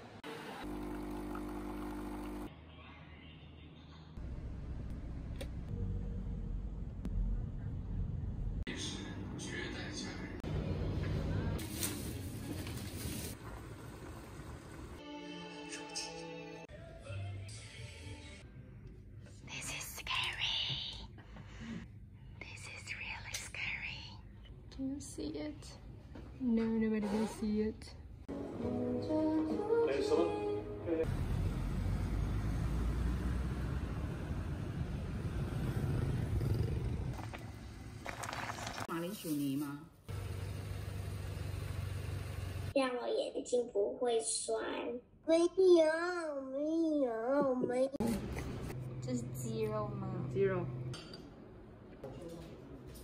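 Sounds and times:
low rumble of road traffic: 31.1s - 38.0s, 40.1s - 42.8s.

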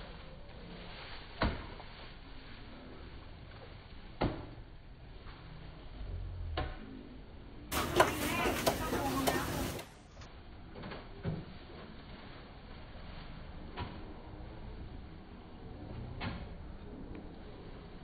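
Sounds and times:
people talking: 7.7s - 10.1s.

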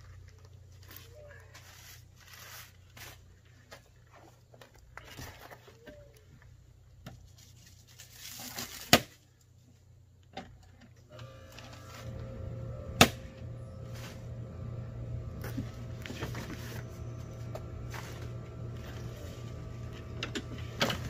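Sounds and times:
packing material crinkling: 0.0s - 6.2s, 7.2s - 9.4s.

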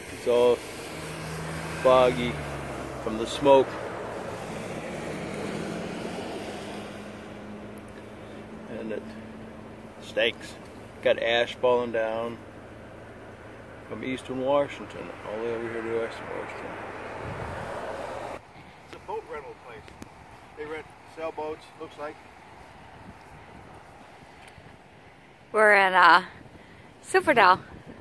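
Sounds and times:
vehicle driving past: 0.0s - 18.4s
outdoor background noise: 0.0s - 28.0s
steady engine hum: 0.0s - 28.0s.

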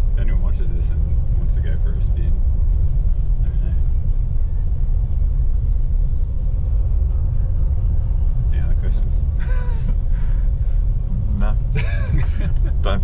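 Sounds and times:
pickup truck engine rumble: 0.0s - 13.0s.

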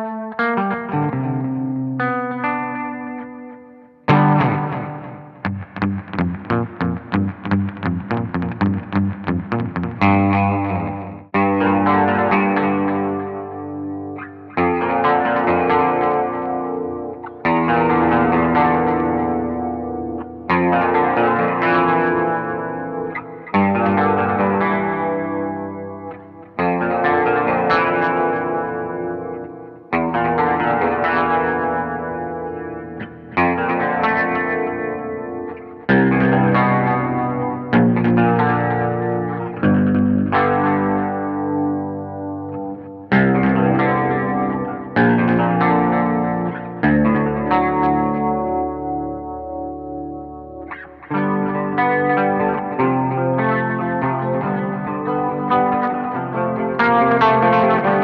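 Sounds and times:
bass guitar chords ringing: 4.1s - 29.4s.

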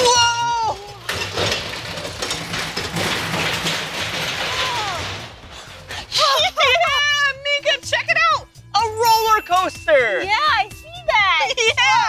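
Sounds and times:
amusement ride machinery clattering: 0.8s - 6.8s.

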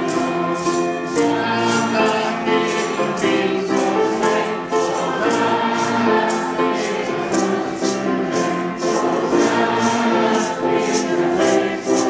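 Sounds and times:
choir singing a hymn: 0.0s - 12.0s
jingling percussion beat: 0.0s - 12.0s
piano accompaniment: 0.0s - 12.0s.

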